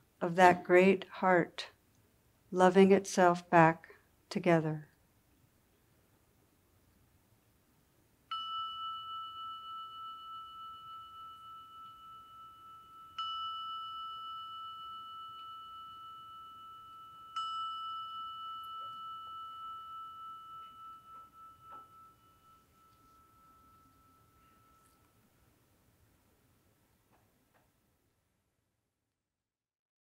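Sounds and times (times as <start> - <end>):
meditation bell ringing: 8.3 - 25.6.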